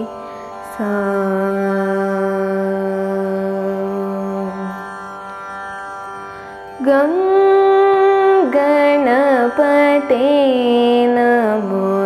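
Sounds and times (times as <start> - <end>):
girl singing: 0.0 - 4.8, 6.8 - 12.0.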